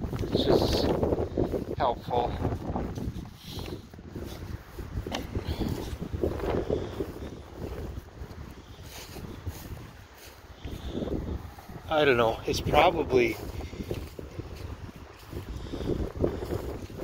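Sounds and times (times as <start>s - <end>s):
footsteps through long grass: 0.0s - 17.0s
wind buffeting microphone: 0.0s - 17.0s.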